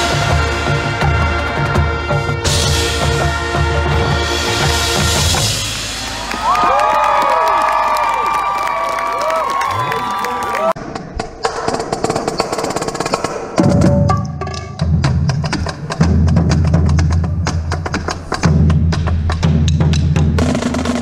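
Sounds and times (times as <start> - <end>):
marching band brass: 0.0 - 6.9, 19.9 - 21.0
snare and quad drums: 10.8 - 21.0.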